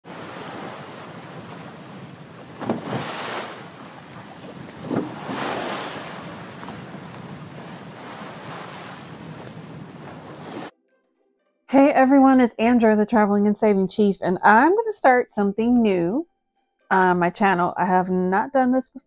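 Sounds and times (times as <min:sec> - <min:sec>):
ocean waves washing: 0:00.0 - 0:10.7
waves breaking: 0:00.0 - 0:10.7.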